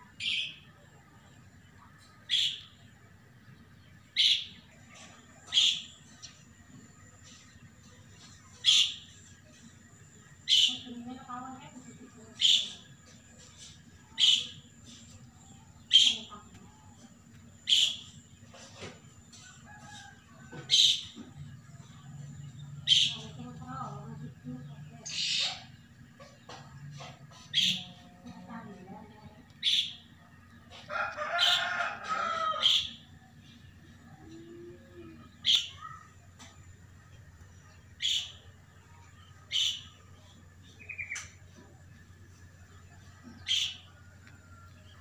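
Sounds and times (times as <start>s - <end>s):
bird chirping: 0.0s - 18.9s, 20.0s - 30.7s, 32.6s - 45.0s
rooster crowing: 19.3s - 21.0s, 30.7s - 33.2s, 43.3s - 45.0s.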